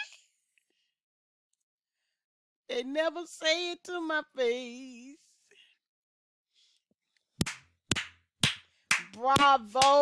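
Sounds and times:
person clapping slowly: 0:07.4 - 0:10.0.

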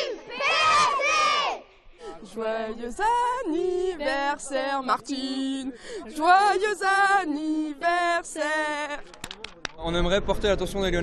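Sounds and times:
girls shouting a cheer: 0:00.0 - 0:01.6.

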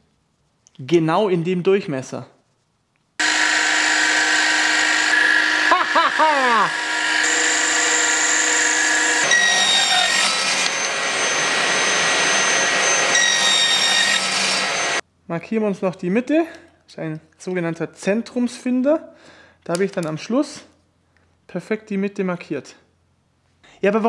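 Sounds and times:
metal lathe whining: 0:03.2 - 0:15.0.

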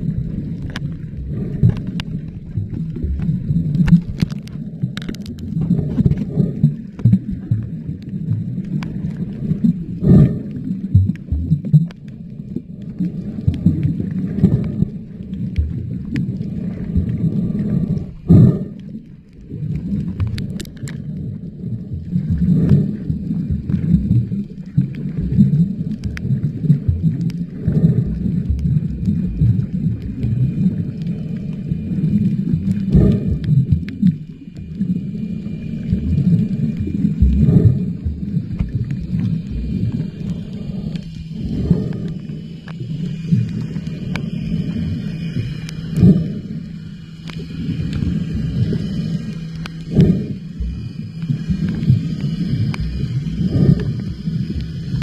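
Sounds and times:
muffled underwater rumble: 0:00.0 - 0:55.0.

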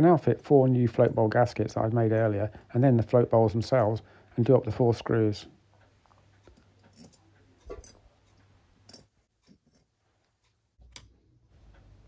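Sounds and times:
small metal parts tapping on wood: 0:06.4 - 0:08.0, 0:08.9 - 0:09.8.

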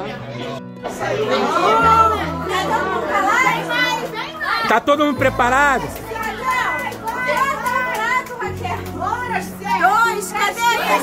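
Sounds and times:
background music: 0:00.0 - 0:11.0
crowd calling out: 0:00.0 - 0:11.0.

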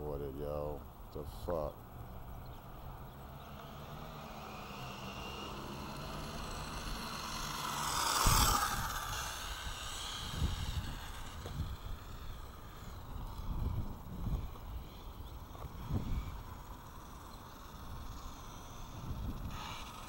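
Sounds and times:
road noise: 0:00.0 - 0:20.0.

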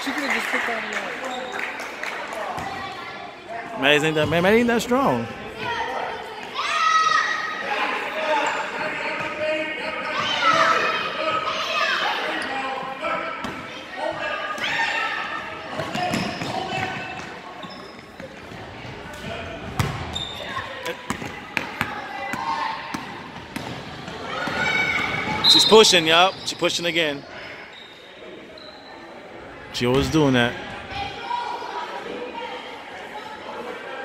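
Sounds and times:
spectators talking and shouting: 0:00.0 - 0:34.0.

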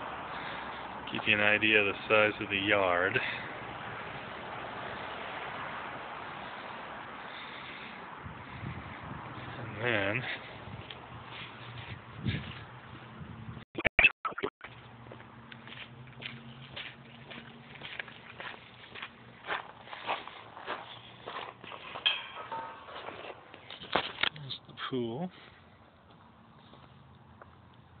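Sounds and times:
footsteps on grass and pavers: 0:09.3 - 0:13.2, 0:14.6 - 0:24.8, 0:26.0 - 0:27.7.

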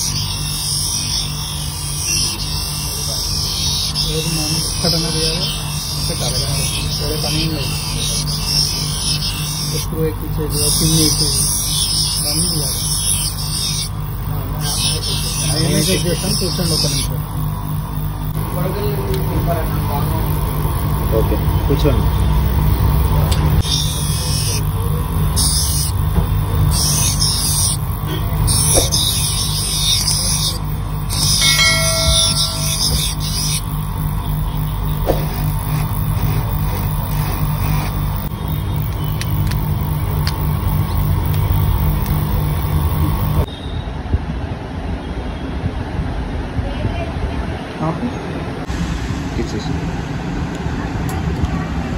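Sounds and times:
grinding wheel humming: 0:00.0 - 0:43.5
hissing lens grinding: 0:00.0 - 0:43.5.

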